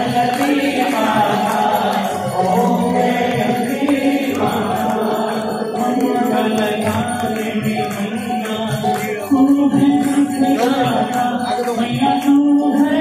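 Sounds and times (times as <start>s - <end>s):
many voices chanting a hymn: 0.0s - 13.0s.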